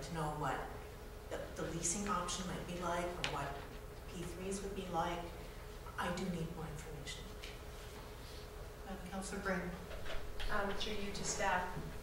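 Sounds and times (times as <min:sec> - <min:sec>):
faint background hum with hiss: 0:00.0 - 0:12.0.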